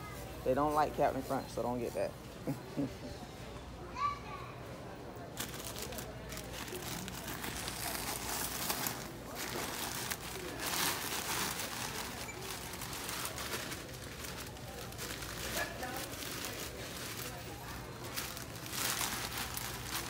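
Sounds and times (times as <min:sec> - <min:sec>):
plastic bags crinkling: 0:05.3 - 0:20.0.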